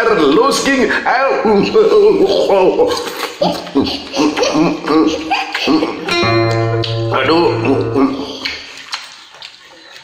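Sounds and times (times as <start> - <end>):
acoustic guitar playing: 6.1 - 8.6.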